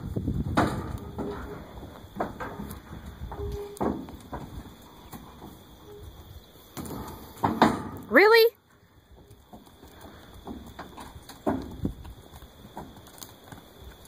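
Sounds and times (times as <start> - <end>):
hooves clunking on trailer floor: 0.0 - 14.0.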